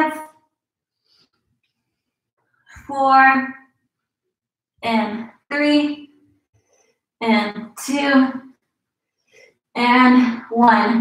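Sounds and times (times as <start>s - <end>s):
woman counting: 0.0s - 0.4s, 2.8s - 3.6s, 4.8s - 6.2s, 7.2s - 8.4s, 9.8s - 11.0s.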